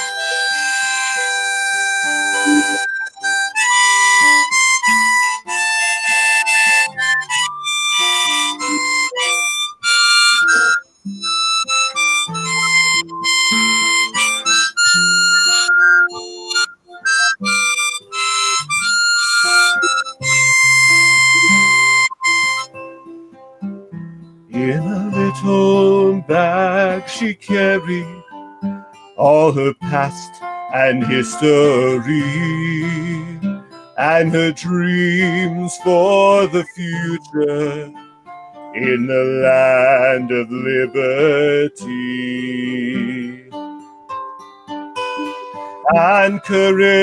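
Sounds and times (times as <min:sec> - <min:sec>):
acoustic guitar: 0:00.0 - 0:47.0
harmonica melody: 0:00.0 - 0:47.0.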